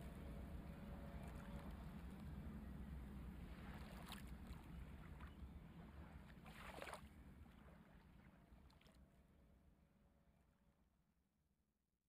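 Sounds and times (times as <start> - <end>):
faint low hum: 0.0 - 6.4.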